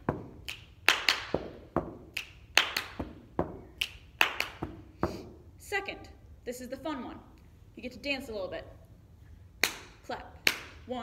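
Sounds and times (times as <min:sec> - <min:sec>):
hand claps: 0:00.0 - 0:04.8, 0:09.6 - 0:10.7.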